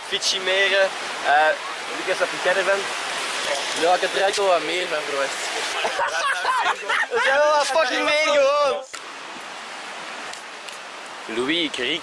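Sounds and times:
stream of flowing water: 0.0s - 12.0s.

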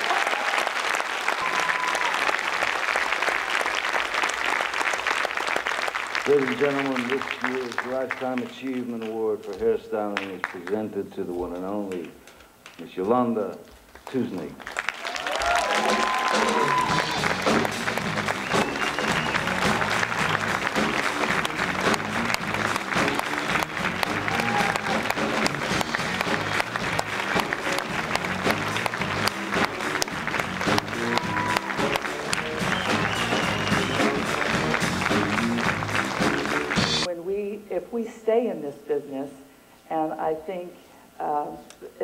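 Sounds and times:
audience cheers: 0.0s - 4.7s, 14.8s - 37.1s
audience applauding: 0.0s - 11.0s, 13.9s - 37.1s
music: 15.7s - 37.1s.

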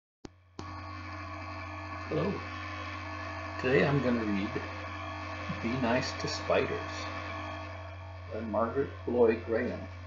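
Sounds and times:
buzzy mains hum: 0.3s - 10.0s.

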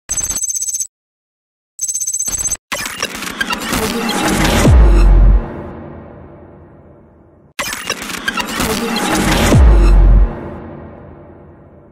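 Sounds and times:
glitchy digital clicks and static: 2.7s - 5.9s, 7.6s - 11.9s
hit sound effect tail: 3.9s - 7.6s, 8.3s - 11.9s.

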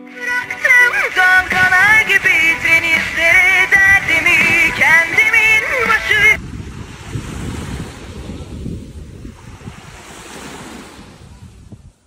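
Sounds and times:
sea waves washing onto beach: 0.0s - 11.7s
wind on microphone: 0.4s - 12.0s.

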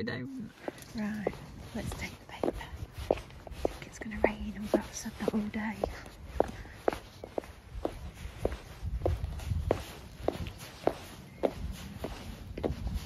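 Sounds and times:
high heels clicking on pavement: 0.6s - 13.0s.

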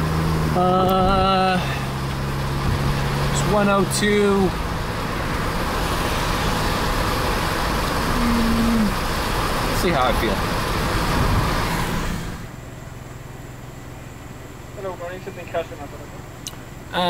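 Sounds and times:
tyre and wind road noise: 0.0s - 17.0s.

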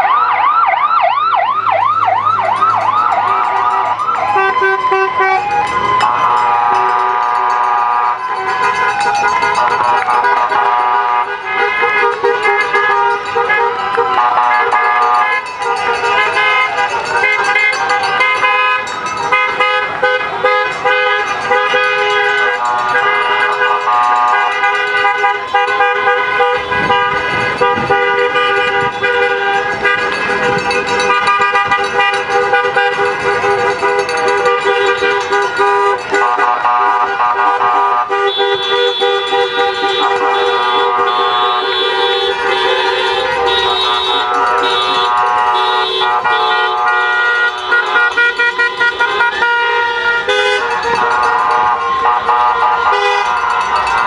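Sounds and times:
cars driving past: 0.0s - 54.0s
car horns honking: 1.8s - 54.0s.

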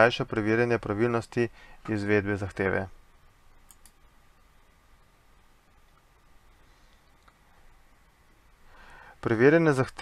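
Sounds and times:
computer mouse clicks: 3.6s - 4.0s.

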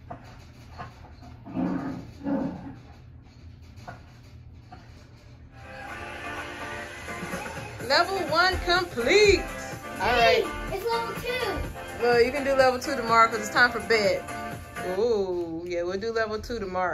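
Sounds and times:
children's game music from tv: 4.8s - 15.4s.

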